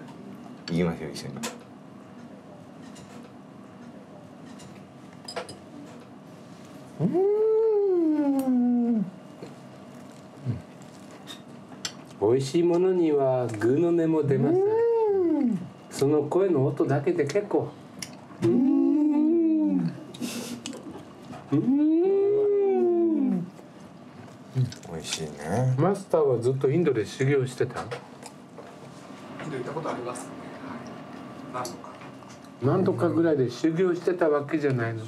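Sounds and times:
man moaning with delight: 7.0 - 9.1, 18.4 - 20.0, 21.5 - 23.5
person humming mmm: 7.0 - 9.2, 10.4 - 10.8, 18.4 - 20.8, 21.5 - 23.6.

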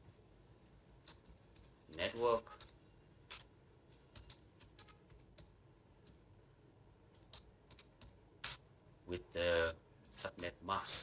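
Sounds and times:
computer keyboard keystrokes: 1.0 - 6.2, 7.1 - 8.6.

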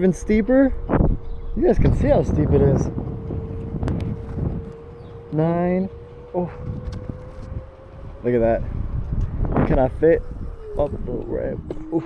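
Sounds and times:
electric scooter motor whining: 0.0 - 12.0
road rumble: 0.0 - 12.0
wind: 0.0 - 12.0.

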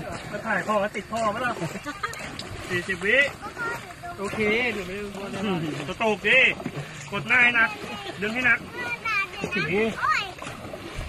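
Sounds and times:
paddles splashing in water: 0.0 - 11.0.

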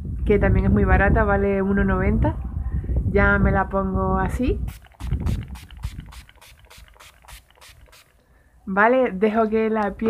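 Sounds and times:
spray bottle spritzes: 4.7 - 8.2.

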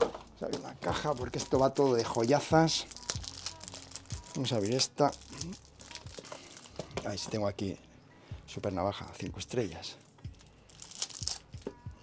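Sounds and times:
plastic crinkling and tearing: 0.0 - 7.3, 10.0 - 11.8.

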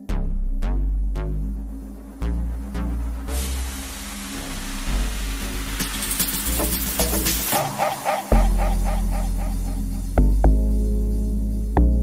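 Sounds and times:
deep bass: 0.0 - 12.0
house music: 0.0 - 12.0
short synth stabs: 0.2 - 10.7.

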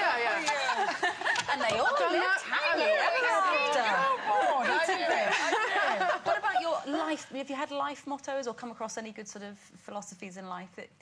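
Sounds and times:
women laughing: 0.0 - 7.0
women talking: 0.0 - 10.7.

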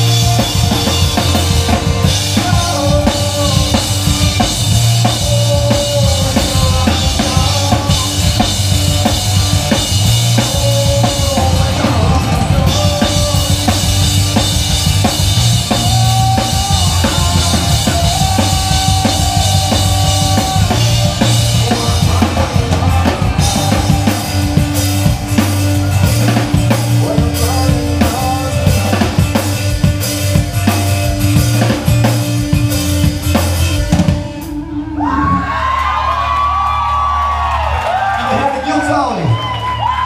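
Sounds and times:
drum kit: 0.0 - 40.0
rock band playing live: 0.0 - 40.0.

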